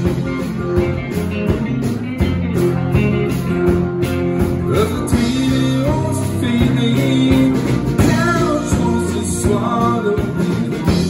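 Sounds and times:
drum kit beat: 0:00.0 - 0:11.0
electric guitar: 0:00.0 - 0:11.0.

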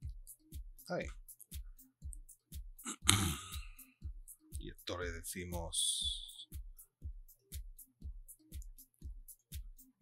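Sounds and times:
background music with steady beat: 0:00.0 - 0:10.0
man sighing loudly: 0:02.9 - 0:03.8.

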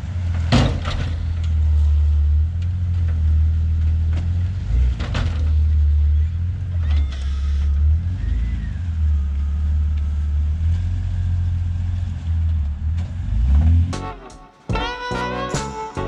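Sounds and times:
engine low rumble: 0:00.0 - 0:14.3.

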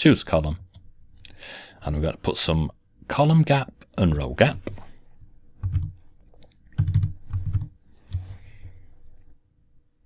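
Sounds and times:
computer keyboard keystrokes: 0:05.6 - 0:06.0, 0:06.8 - 0:07.7.

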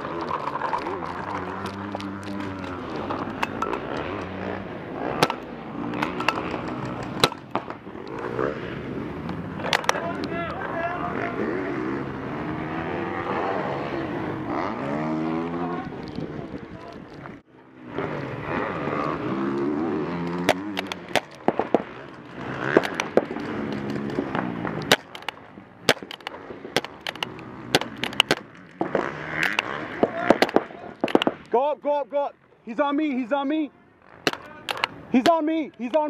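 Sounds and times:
steady noisy background: 0:00.0 - 0:31.6
distant shouting voices: 0:09.5 - 0:16.9
paintball markers popping: 0:20.3 - 0:31.6, 0:34.3 - 0:36.0.

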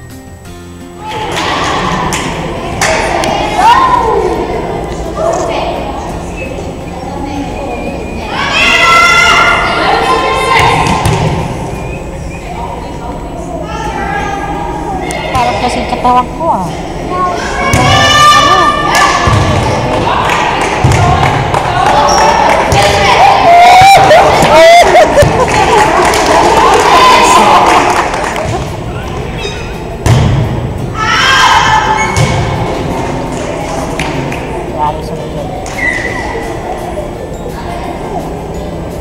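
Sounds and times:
players calling out: 0:06.1 - 0:30.0.

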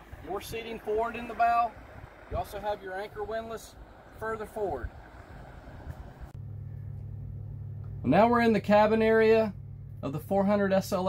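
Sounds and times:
wind and water noise: 0:00.0 - 0:06.4
low machinery hum: 0:00.0 - 0:11.0.

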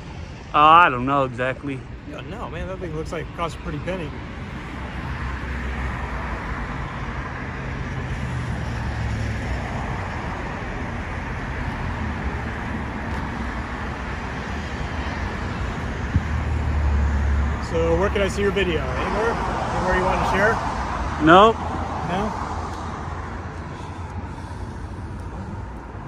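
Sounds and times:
road traffic noise: 0:00.0 - 0:26.0
vehicle engine hum: 0:00.0 - 0:26.0.

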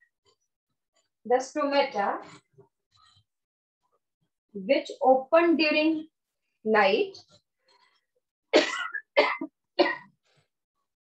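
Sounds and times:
woman coughing: 0:08.6 - 0:10.1.

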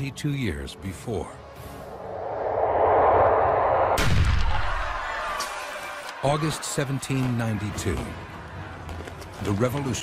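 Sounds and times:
rushing whoosh: 0:01.8 - 0:04.9
deep boom: 0:02.5 - 0:05.0.

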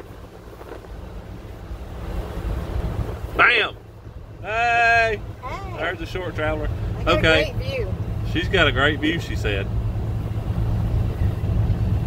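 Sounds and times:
ship engine drone: 0:00.0 - 0:12.0
wind buffeting microphone: 0:00.0 - 0:12.0.

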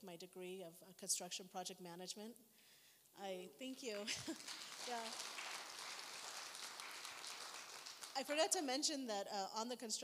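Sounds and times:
audience clapping: 0:04.0 - 0:08.7.

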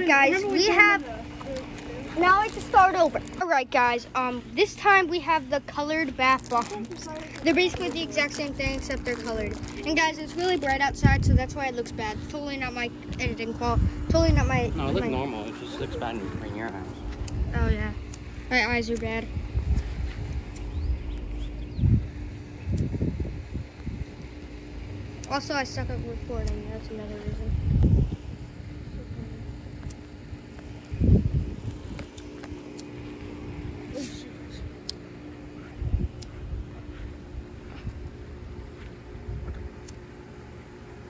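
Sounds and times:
faint steady hum: 0:00.0 - 0:41.0
wind rumbling on microphone: 0:06.4 - 0:15.4, 0:16.0 - 0:24.4, 0:25.8 - 0:32.2, 0:35.6 - 0:39.8.

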